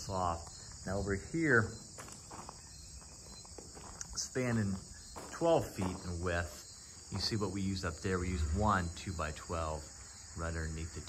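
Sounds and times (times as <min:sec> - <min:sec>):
chorus of insects: 0:00.0 - 0:11.0
faint footsteps: 0:00.2 - 0:07.6.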